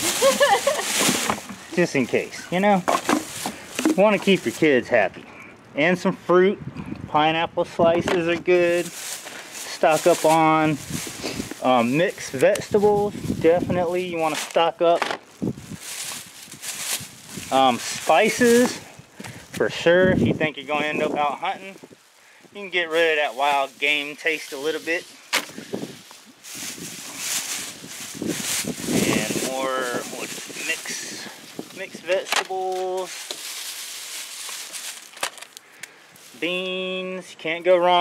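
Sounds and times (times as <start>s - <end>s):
plastic bag rustling: 0.0s - 4.8s, 8.2s - 19.5s, 20.7s - 36.8s
goods knocking into plastic tote: 2.8s - 4.3s.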